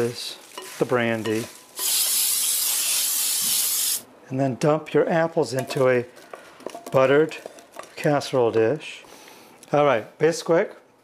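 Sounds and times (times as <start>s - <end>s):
aerosol spray hissing: 1.8s - 4.0s.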